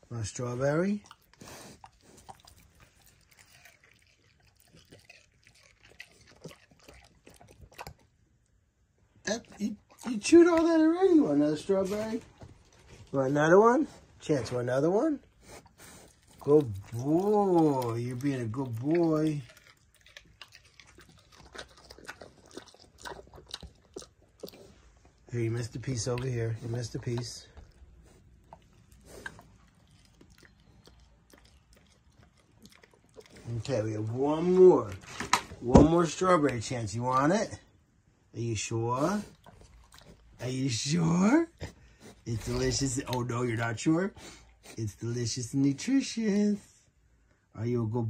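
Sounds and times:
pig chewing: 0.0 - 8.5, 9.1 - 37.7, 38.9 - 46.6.

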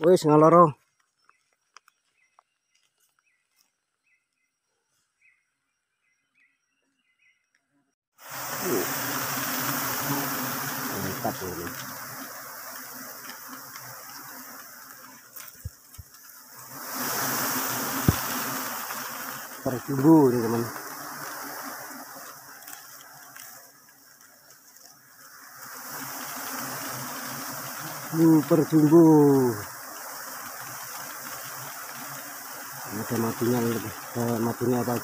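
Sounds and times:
bee swarm buzzing: 8.2 - 35.0
rustling: 8.6 - 28.7.

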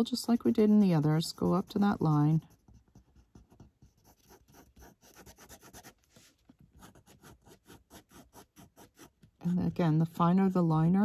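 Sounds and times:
pen nib scratching on paper: 0.0 - 9.3.

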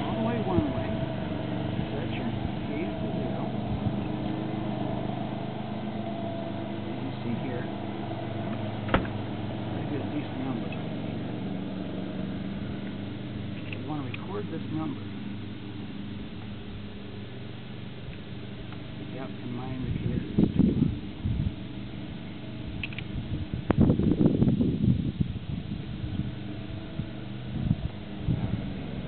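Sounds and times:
steady mechanical hum: 0.0 - 29.0.

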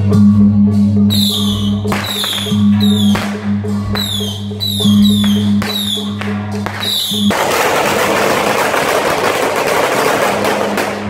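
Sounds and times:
gongs and cymbals beat: 0.0 - 11.0
suona-led procession music: 0.0 - 11.0.

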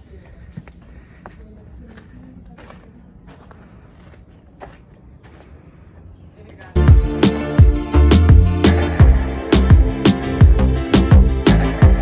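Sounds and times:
footsteps on a dirt path: 0.0 - 6.8.

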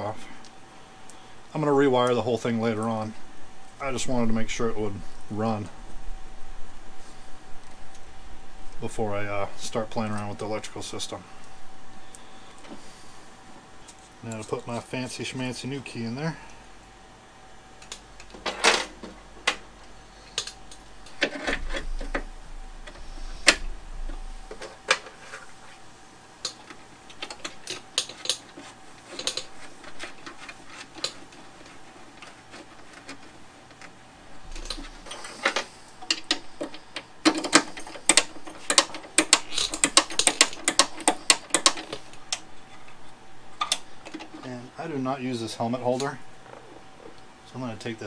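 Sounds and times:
rapid clicks: 26.4 - 42.5.

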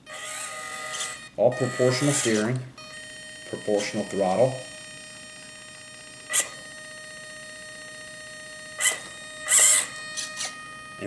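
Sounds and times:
electric motor and gears whirring: 0.0 - 11.0
high-pitched electronic whine: 0.0 - 11.0.

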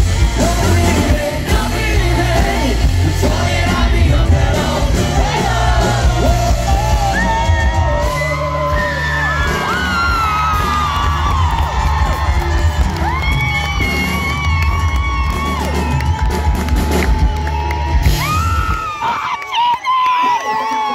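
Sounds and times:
live folk-rock band playing: 0.0 - 18.3
heavy bass: 0.0 - 18.9
crowd cheering: 0.0 - 20.9.

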